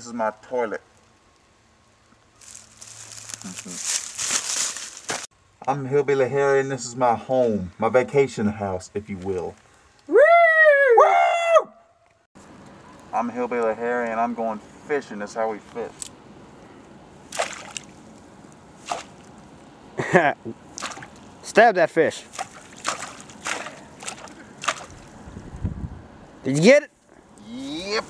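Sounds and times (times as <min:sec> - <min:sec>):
faint outdoor background: 0:00.0 - 0:28.0
man whooping yell in metal pipe: 0:10.1 - 0:11.8
stick splashing in shallow water: 0:17.3 - 0:18.0, 0:18.8 - 0:19.3, 0:20.8 - 0:21.3, 0:22.3 - 0:25.2.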